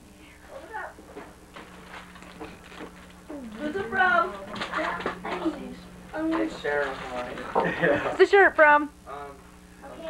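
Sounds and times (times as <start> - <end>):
faint voices in a room: 0.0 - 10.0.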